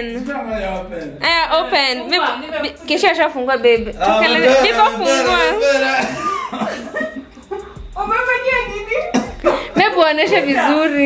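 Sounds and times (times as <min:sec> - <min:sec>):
people laughing: 0:04.0 - 0:11.0.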